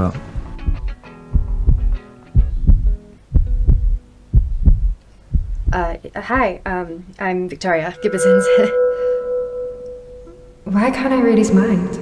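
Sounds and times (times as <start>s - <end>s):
heartbeat thumps: 0.3s - 7.0s
low music drone: 7.9s - 10.7s.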